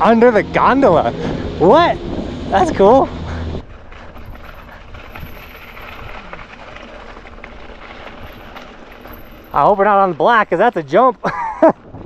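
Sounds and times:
low rumble: 0:00.0 - 0:10.8
bike rattles and ticks: 0:00.0 - 0:12.0
bike tyres rolling on dirt: 0:00.0 - 0:12.0.

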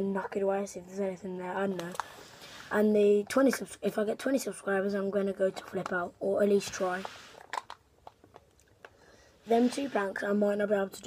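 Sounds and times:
short breath: 0:08.9 - 0:09.5.

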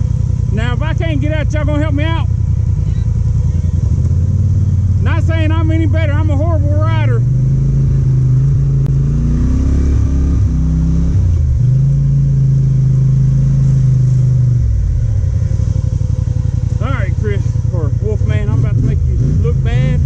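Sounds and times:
atv engine running: 0:00.0 - 0:20.0.

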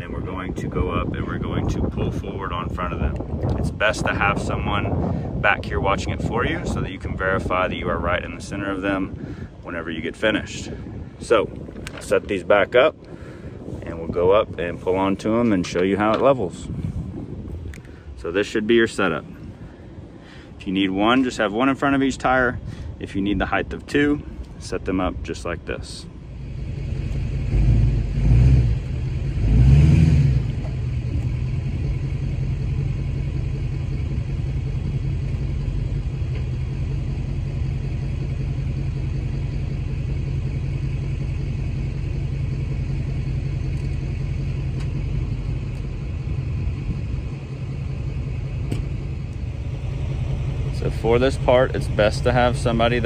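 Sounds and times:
vehicle engine towing: 0:00.0 - 0:53.0.

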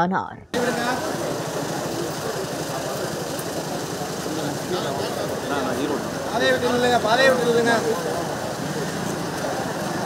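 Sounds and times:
crowd murmur: 0:00.5 - 0:10.0
car engine idling: 0:00.6 - 0:10.0.

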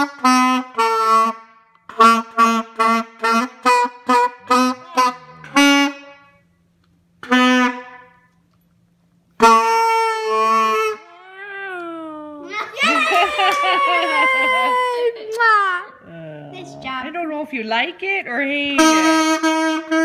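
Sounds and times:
saxophone notes: 0:00.0 - 0:08.5, 0:09.4 - 0:11.1, 0:18.6 - 0:20.0.

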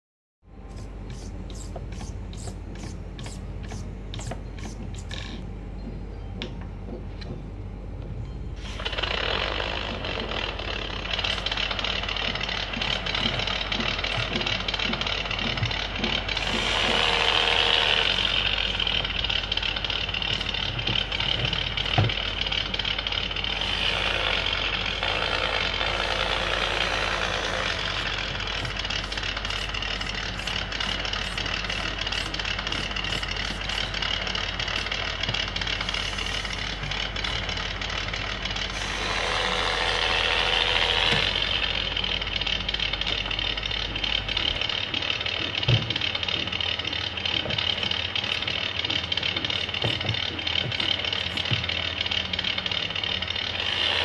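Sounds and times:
small electric motor whining: 0:00.7 - 0:05.4, 0:08.6 - 0:42.6, 0:46.3 - 0:54.0.

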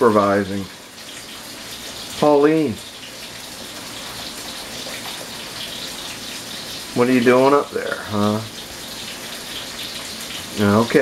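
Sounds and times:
meat sizzling in a frying pan: 0:00.0 - 0:11.0.

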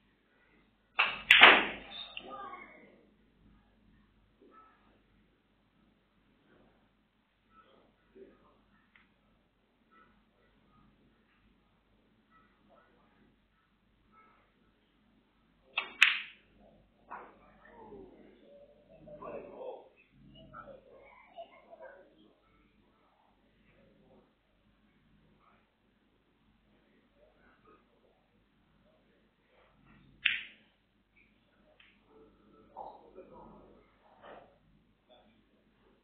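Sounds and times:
snooker balls clicking: 0:15.7 - 0:16.4, 0:30.2 - 0:30.6.

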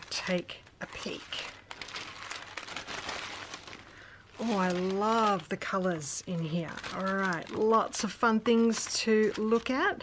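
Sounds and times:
tissue paper rustling: 0:00.0 - 0:10.0.

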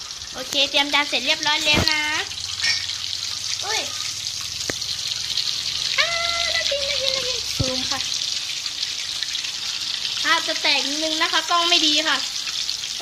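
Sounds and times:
dough sizzling in hot oil: 0:00.0 - 0:13.0
high-pitched voice: 0:06.0 - 0:08.0.

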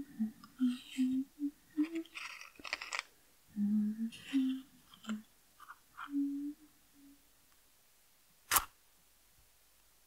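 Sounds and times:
woman humming: 0:00.0 - 0:02.3, 0:03.5 - 0:05.3, 0:06.0 - 0:07.2.

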